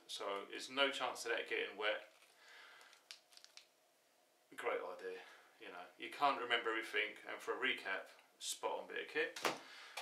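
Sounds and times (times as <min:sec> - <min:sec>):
plastic bag rustle: 0:01.9 - 0:03.7.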